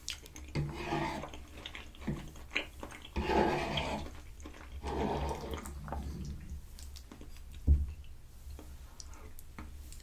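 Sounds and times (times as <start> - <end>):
fork scraping creamy pasta: 0.5 - 5.8.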